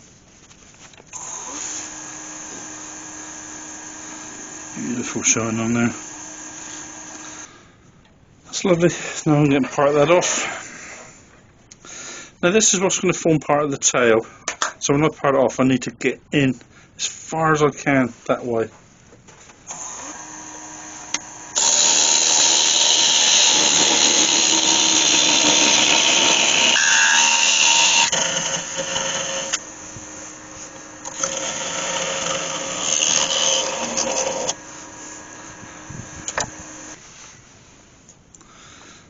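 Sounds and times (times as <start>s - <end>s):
wood lathe humming: 1.2s - 7.5s, 19.7s - 37.0s
turning tool scraping wood: 20.0s - 37.4s.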